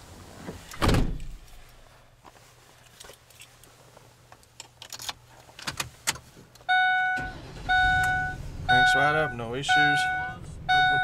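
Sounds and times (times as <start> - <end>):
dashboard warning chime: 6.7 - 11.0
engine cranking and starting: 7.2 - 8.7.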